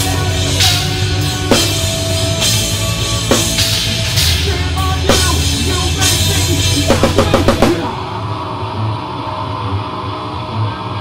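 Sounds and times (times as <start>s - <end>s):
throbbing low bass hum: 0.0s - 10.6s.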